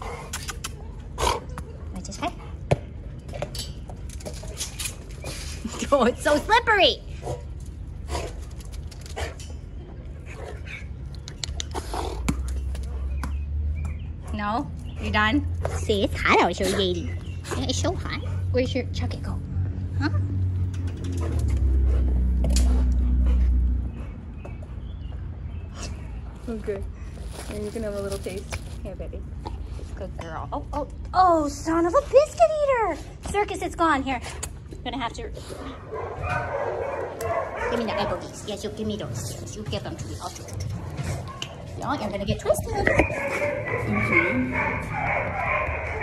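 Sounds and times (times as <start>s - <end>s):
ball clicking on concrete: 11.1s - 14.0s.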